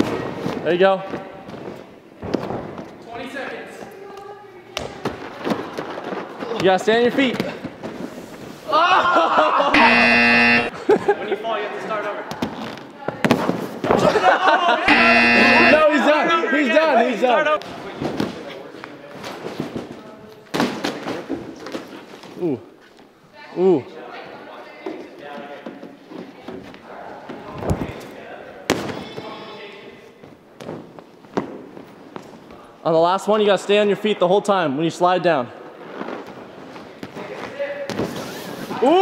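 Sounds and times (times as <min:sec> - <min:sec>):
voices: 0:14.0 - 0:17.6.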